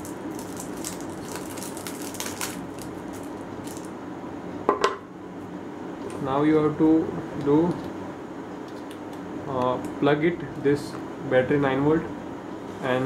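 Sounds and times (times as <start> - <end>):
plastic wrap crinkling: 0.0 - 3.9
steady low hum: 0.0 - 13.0.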